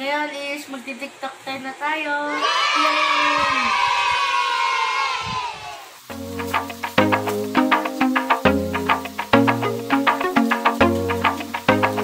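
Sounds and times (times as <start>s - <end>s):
children cheering yay: 2.3s - 6.0s.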